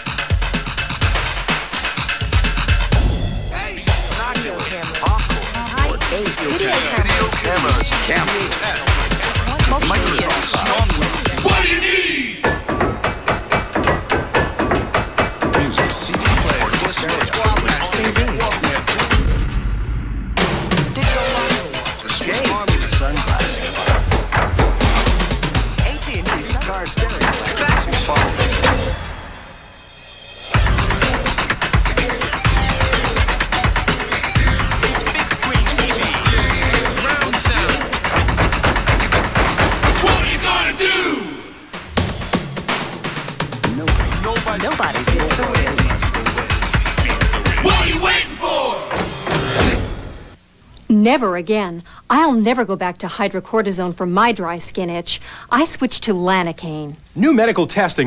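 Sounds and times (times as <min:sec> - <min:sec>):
stomp percussion stick taps and thuds: 0:12.4 - 0:17.3, 0:23.9 - 0:28.8, 0:36.6 - 0:40.2
sharp percussive hits: 0:20.4 - 0:40.5.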